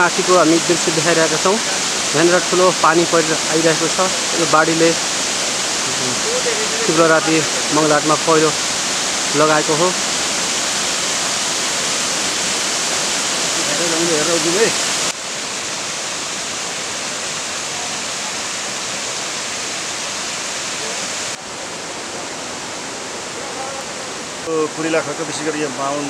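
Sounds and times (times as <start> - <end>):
person speaking: 0.0 - 5.1, 5.8 - 8.6, 9.3 - 10.0
floodwater rushing: 0.0 - 26.0.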